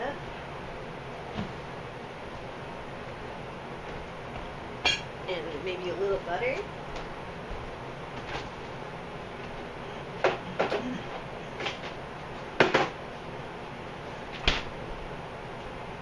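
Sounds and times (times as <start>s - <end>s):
kitchen items knocking and clacking: 12.6s - 13.0s.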